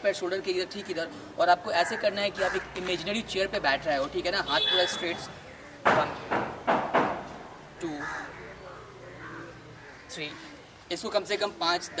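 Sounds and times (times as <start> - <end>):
crow cawing: 1.8 - 2.9, 7.9 - 10.7.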